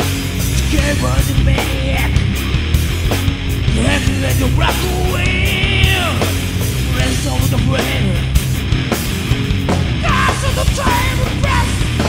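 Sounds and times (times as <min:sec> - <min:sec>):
doom metal band playing: 0:00.0 - 0:12.0.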